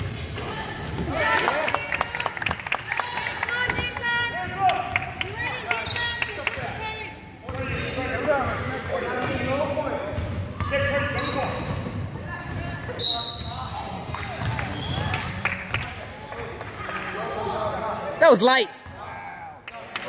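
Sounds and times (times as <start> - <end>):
sneakers squeaking: 0.0 - 1.2, 4.3 - 17.6.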